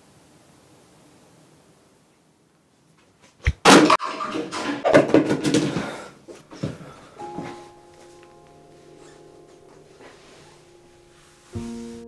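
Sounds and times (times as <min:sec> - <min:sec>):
clattering and rustling: 0:03.0 - 0:07.6.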